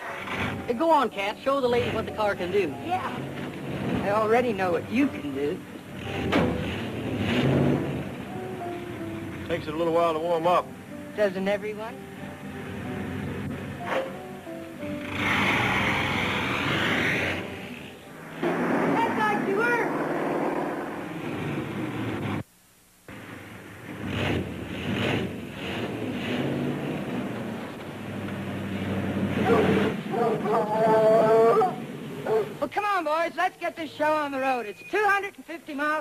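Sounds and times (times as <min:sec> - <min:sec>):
background music: 0:00.0 - 0:19.9
car engine revving: 0:03.0 - 0:10.4, 0:14.8 - 0:22.4, 0:23.1 - 0:32.6
voices: 0:29.4 - 0:36.0.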